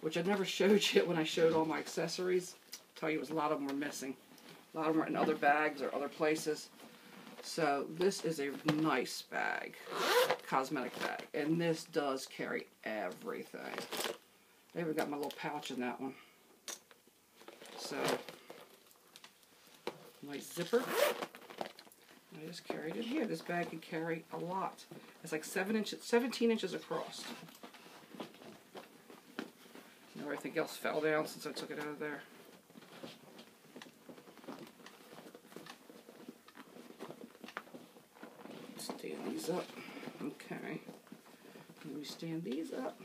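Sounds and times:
handbag rustling: 19.7s - 25.2s, 32.3s - 43.0s.

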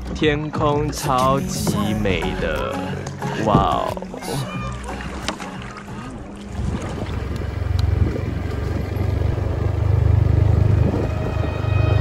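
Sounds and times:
low rumbling on microphone: 6.1s - 12.0s.

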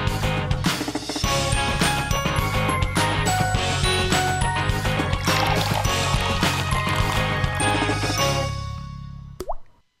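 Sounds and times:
theme music: 0.0s - 9.2s.

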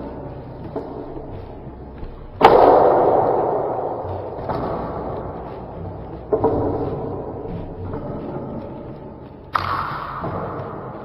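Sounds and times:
hard strike on wooden dummy: 2.4s - 5.4s.

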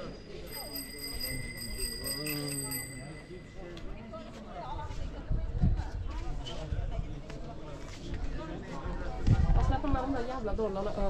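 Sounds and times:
steady high ringing tone: 0.0s - 4.2s
people talking: 0.0s - 11.0s.

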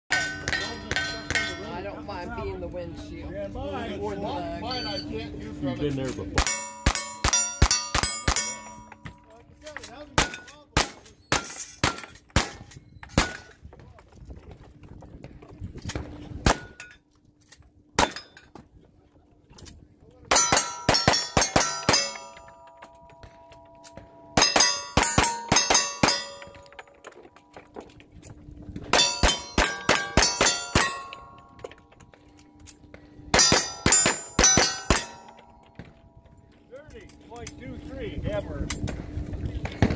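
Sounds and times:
steel target clanging: 0.1s - 2.0s, 6.3s - 13.5s, 20.3s - 28.0s, 28.8s - 36.2s.

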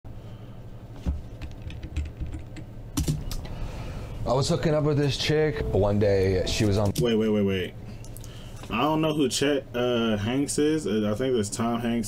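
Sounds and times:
low steady hum: 0.1s - 12.0s
keyboard keys clicking: 1.4s - 3.4s.

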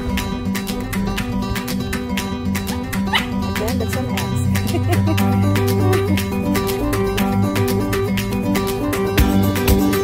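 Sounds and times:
acoustic guitar music: 0.0s - 10.0s
small dog yipping: 2.7s - 3.4s.

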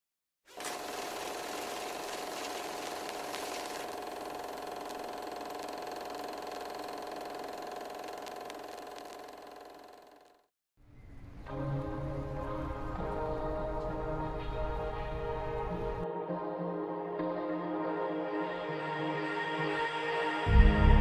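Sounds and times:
mechanical whirring hum: 0.5s - 12.8s.

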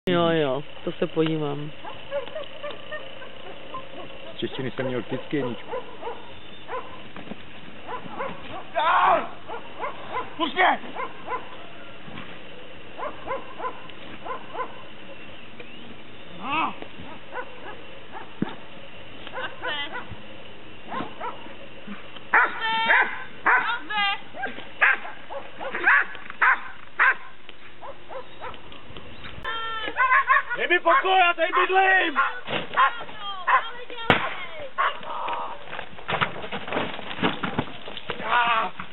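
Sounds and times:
dog barking and yipping: 1.8s - 7.1s, 7.8s - 12.0s, 12.9s - 15.1s, 17.0s - 20.2s, 20.8s - 21.6s, 22.3s - 28.7s, 29.8s - 33.8s, 34.7s - 35.6s.

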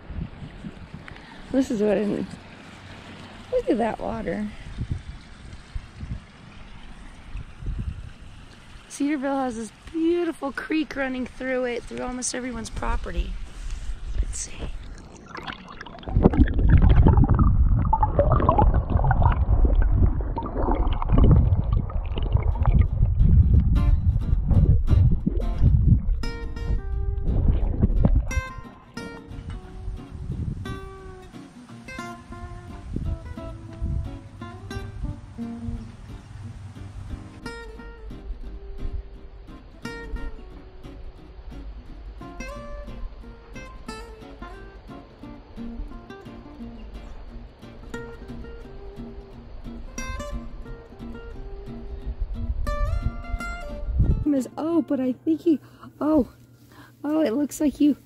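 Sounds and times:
creek water rushing: 0.7s - 23.6s, 24.6s - 44.8s
plucked acoustic guitar music: 9.0s - 57.9s.

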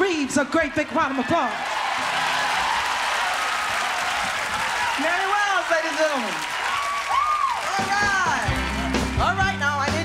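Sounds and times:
live band music: 7.6s - 10.0s
bass notes: 7.9s - 10.0s.

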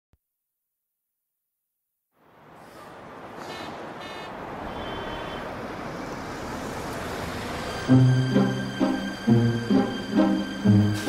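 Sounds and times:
street traffic rushing past: 2.2s - 11.0s.

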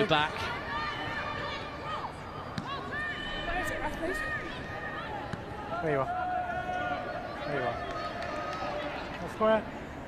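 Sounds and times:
outdoor crowd ambience: 0.0s - 10.0s.

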